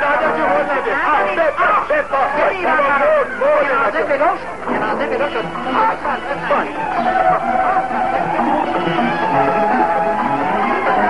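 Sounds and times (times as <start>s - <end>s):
people shouting and chattering: 0.0s - 11.0s.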